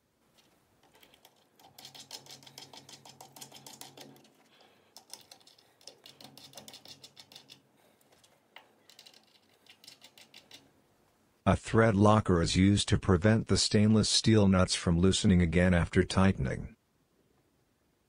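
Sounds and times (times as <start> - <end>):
metal nuts clicking on screws: 0.3 - 10.7.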